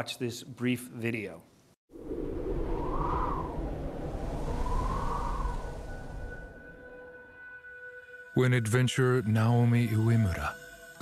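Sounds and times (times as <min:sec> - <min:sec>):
wind howling: 0:01.9 - 0:07.6.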